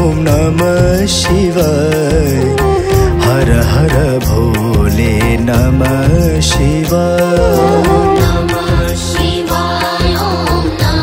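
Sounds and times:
devotional music with percussion: 0:00.0 - 0:11.0.

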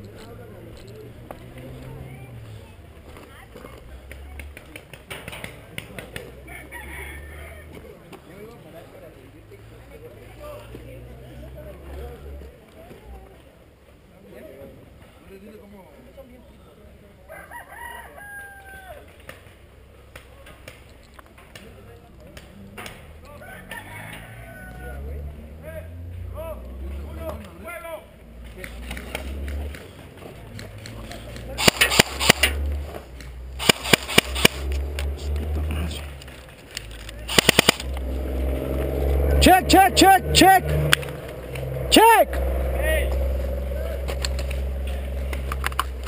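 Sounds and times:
rooster crowing faintly: 0:06.4 - 0:07.8, 0:17.3 - 0:19.2, 0:23.3 - 0:25.3
airsoft guns firing: 0:31.6 - 0:32.6, 0:33.6 - 0:34.8, 0:37.2 - 0:38.0.

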